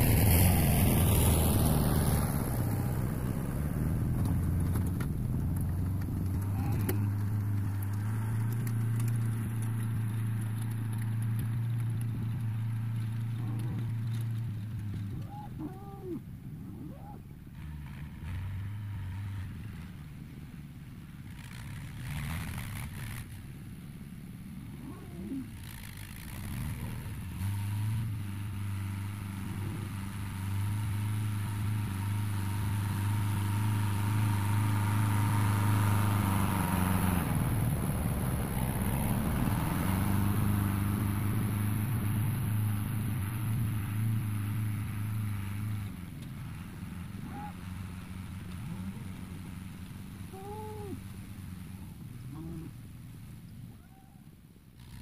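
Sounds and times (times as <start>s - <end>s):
tractor diesel engine running: 0.0s - 53.7s.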